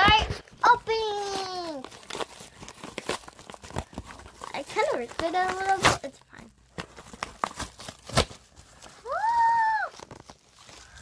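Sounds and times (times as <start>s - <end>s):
child exclaiming: 0.0s - 1.8s, 9.0s - 10.0s
paper envelope tearing and crinkling: 0.1s - 11.0s.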